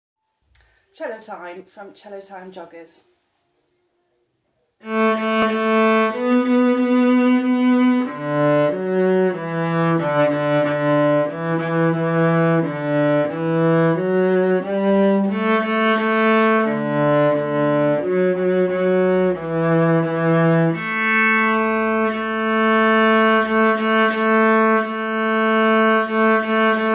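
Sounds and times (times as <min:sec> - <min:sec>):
bowed cello: 0:04.8 - 0:26.9.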